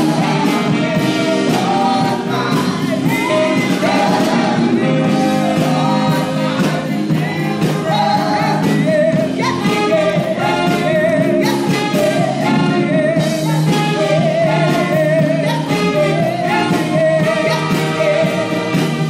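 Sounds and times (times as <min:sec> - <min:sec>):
instrumental accompaniment: 0:00.0 - 0:19.0
person singing with vibrato: 0:00.0 - 0:19.0.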